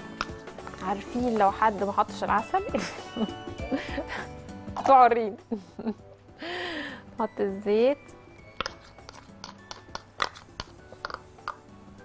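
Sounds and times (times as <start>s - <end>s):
faint background music: 0.0s - 12.0s
metal spoon knocking plastic bowl: 8.6s - 11.6s.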